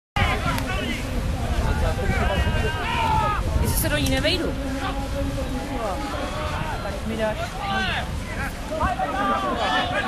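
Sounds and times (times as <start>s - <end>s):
steady low rumble: 0.2s - 10.0s
voices calling out: 0.2s - 10.0s.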